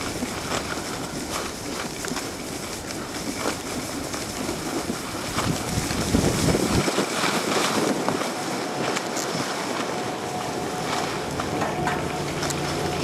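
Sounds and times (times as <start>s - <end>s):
snowblades scraping over snow: 0.0s - 13.0s
wind buffeting microphone: 0.0s - 13.0s.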